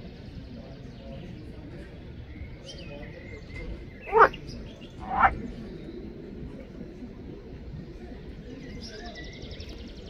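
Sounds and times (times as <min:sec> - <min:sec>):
frog calls: 0:04.1 - 0:04.4, 0:05.0 - 0:05.4.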